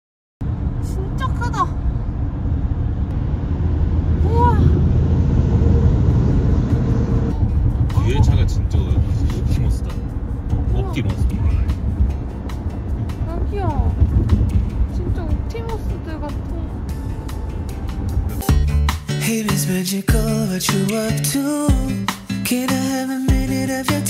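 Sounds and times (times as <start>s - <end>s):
car road and engine rumble: 0.4s - 19.1s.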